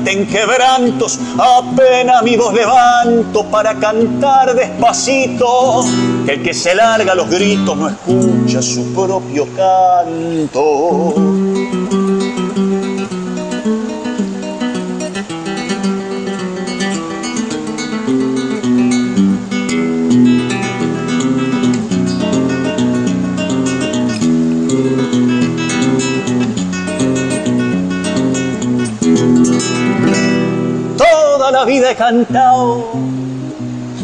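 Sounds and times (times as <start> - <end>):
solo acoustic guitar: 0.0 - 34.0.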